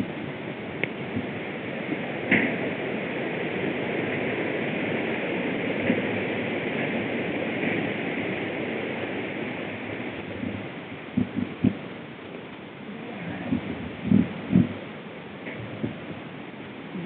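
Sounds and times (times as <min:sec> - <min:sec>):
wind on microphone: 0:00.0 - 0:12.1, 0:12.8 - 0:16.3
bike tyres rumbling: 0:00.0 - 0:16.3.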